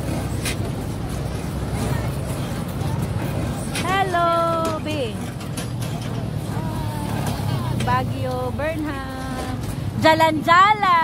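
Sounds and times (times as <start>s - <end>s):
quad bike engines rumbling: 0.0s - 11.0s
voices: 0.0s - 11.0s.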